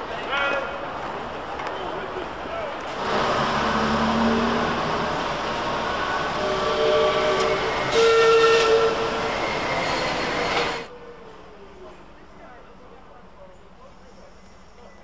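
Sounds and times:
tram running: 0:00.0 - 0:10.9.

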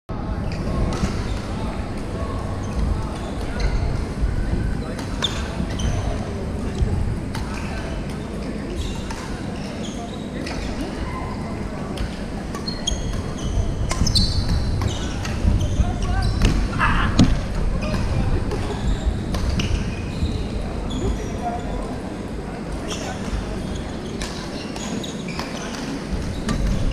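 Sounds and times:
indistinct voices: 0:10.4 - 0:24.3
shoes squeaking on wooden floor: 0:12.6 - 0:21.9.

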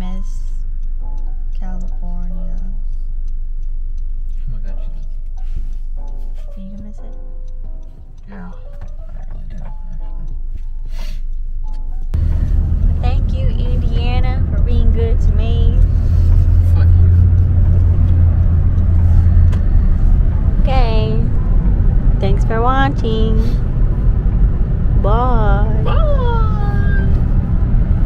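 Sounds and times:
car road and engine rumble: 0:00.0 - 0:28.0
person speaking: 0:22.2 - 0:23.6.

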